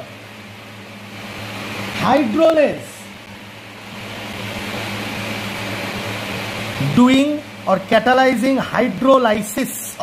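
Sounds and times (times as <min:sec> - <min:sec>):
appliance humming: 0:00.0 - 0:10.0.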